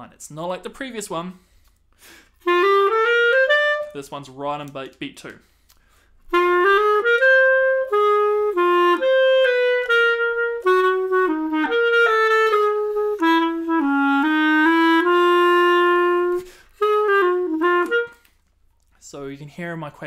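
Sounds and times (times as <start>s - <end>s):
solo clarinet jazz waltz: 2.4s - 4.0s, 6.2s - 18.4s.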